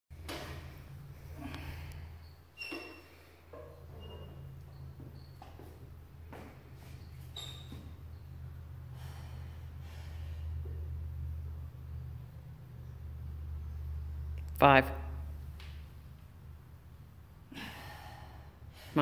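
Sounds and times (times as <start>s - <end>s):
steady low hum: 0.2s - 19.0s
woman's forceful breaths: 8.8s - 10.9s, 17.5s - 19.0s.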